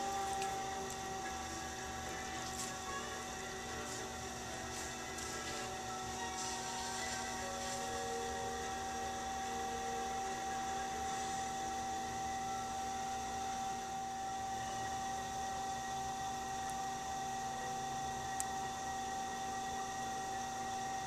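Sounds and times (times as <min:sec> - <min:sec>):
pottery wheel motor humming: 0:00.0 - 0:21.0.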